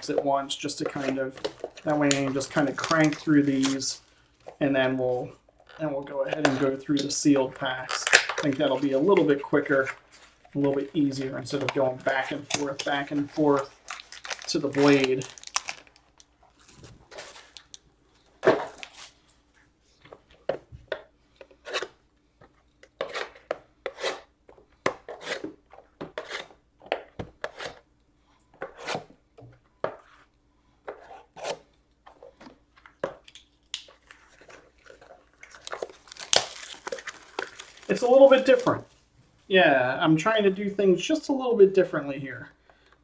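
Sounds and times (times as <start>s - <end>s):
man speaking: 0.0s - 4.0s, 4.6s - 13.7s, 14.5s - 15.3s, 37.9s - 38.9s, 39.5s - 42.5s
foil wrappers crinkling and tearing: 0.9s - 4.0s, 10.8s - 17.8s, 33.8s - 38.9s.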